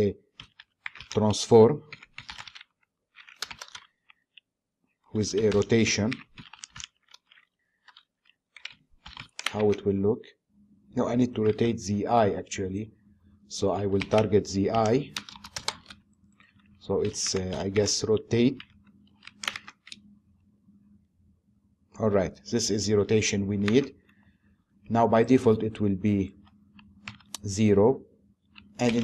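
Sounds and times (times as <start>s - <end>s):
keyboard typing: 0.0s - 4.5s, 5.1s - 9.9s, 13.6s - 20.1s, 23.1s - 24.3s, 25.3s - 27.7s, 28.4s - 29.0s.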